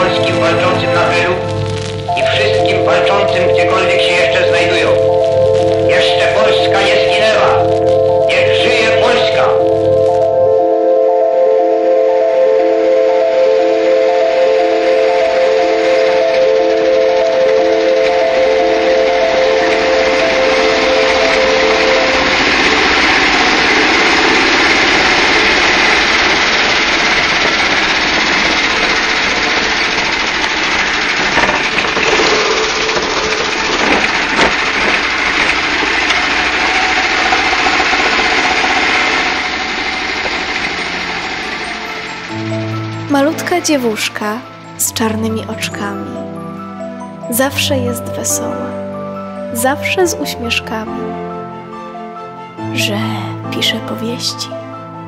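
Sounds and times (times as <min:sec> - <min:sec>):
dark cinematic held tones: 0:00.0 - 0:55.0
low pulsing note: 0:00.0 - 0:55.0
loud rushing hiss: 0:12.6 - 0:43.1.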